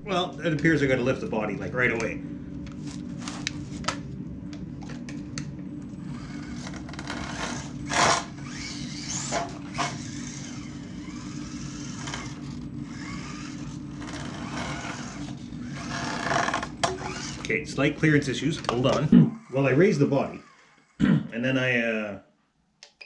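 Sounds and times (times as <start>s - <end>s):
toy car motor and gears whining: 6.0s - 17.6s, 18.9s - 21.0s.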